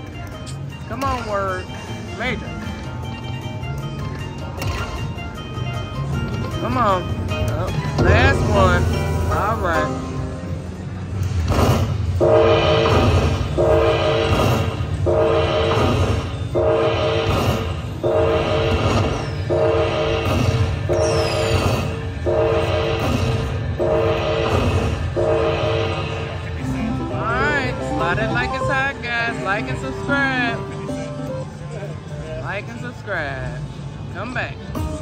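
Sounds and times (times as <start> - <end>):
slot machine chime chord: 25.2 - 30.7.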